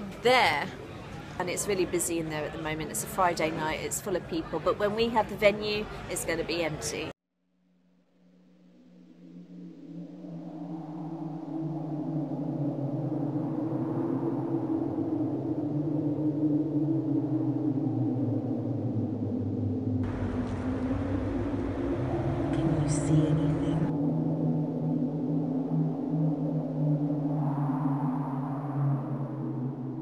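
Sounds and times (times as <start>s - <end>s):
broad background rush: 0.0s - 7.1s, 20.0s - 23.9s
low eerie drone: 8.0s - 30.0s.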